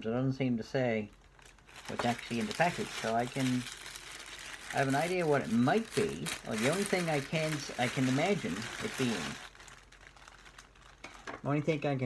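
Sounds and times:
packaging rustling: 1.2s - 11.5s
person speaking: 1.8s - 3.9s, 4.6s - 9.6s, 11.4s - 12.0s.

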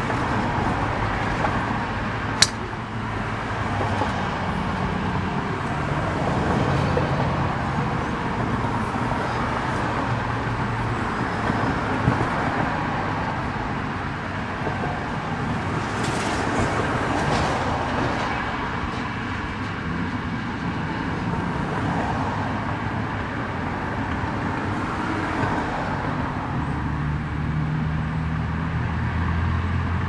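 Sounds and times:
distant road traffic hum: 0.0s - 30.0s.

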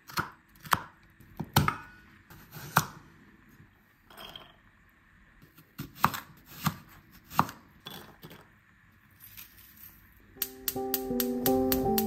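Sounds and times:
light background music: 10.4s - 12.0s.

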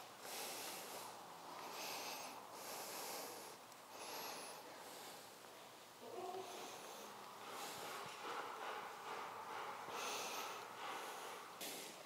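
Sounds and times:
dog breathing noisily: 0.0s - 12.0s.

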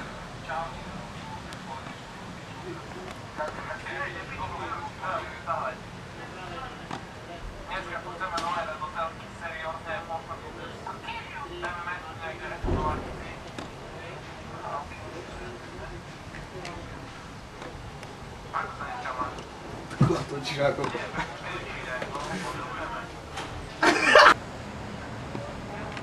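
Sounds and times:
people talking: 0.0s - 17.8s, 18.4s - 24.4s, 25.2s - 26.0s.

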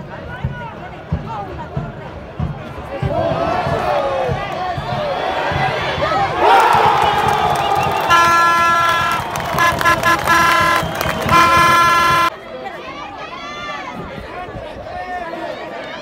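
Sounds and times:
crowd shouting and cheering: 0.0s - 16.0s
horn blasts: 8.1s - 12.3s.

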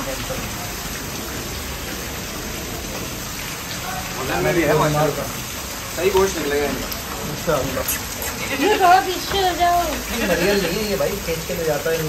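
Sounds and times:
steady rain falling: 0.0s - 12.0s.

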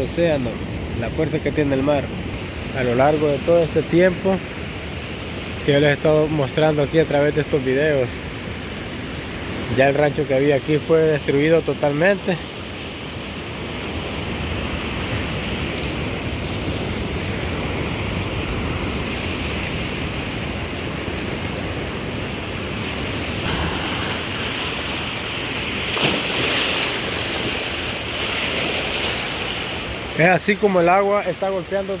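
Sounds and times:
ocean waves on sand beach: 0.0s - 32.0s
wind on microphone: 12.4s - 30.2s.

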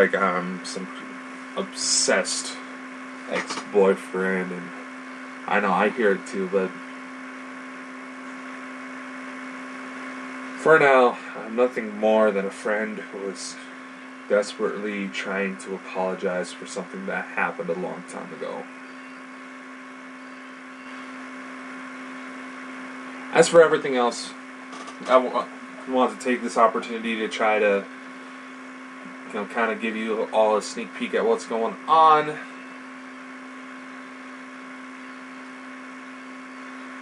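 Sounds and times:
electrical hum: 0.0s - 37.0s.

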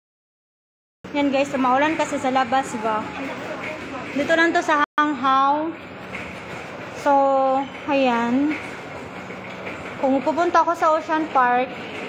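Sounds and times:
steady background hum: 1.1s - 12.0s.

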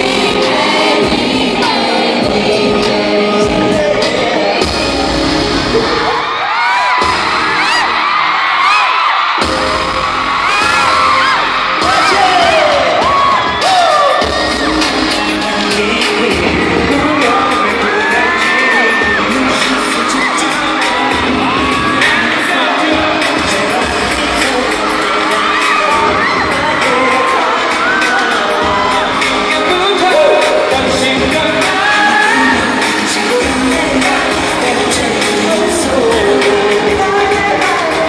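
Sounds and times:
crowd screaming and cheering: 0.0s - 38.0s
loud pop music: 0.0s - 38.0s.

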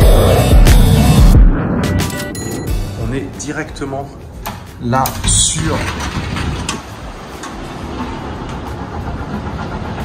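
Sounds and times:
rumble of city traffic: 2.8s - 10.0s.

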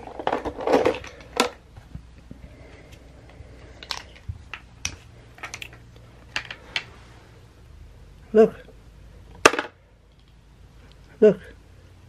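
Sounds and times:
plastic blocks clacking: 0.0s - 1.7s, 3.6s - 6.9s, 9.3s - 10.4s.

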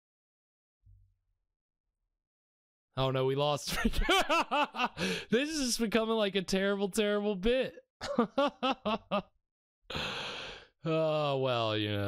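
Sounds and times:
man laughing: 3.7s - 5.7s, 8.0s - 9.3s
man sighing: 5.0s - 5.4s, 9.9s - 11.3s.

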